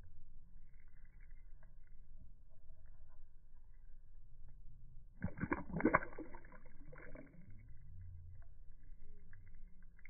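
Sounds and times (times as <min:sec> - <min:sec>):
fish splashing in water: 0:05.2 - 0:07.6.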